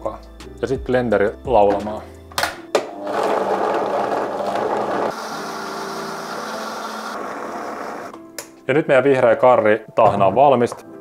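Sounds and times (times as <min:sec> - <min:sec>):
blender running: 0:02.9 - 0:08.1.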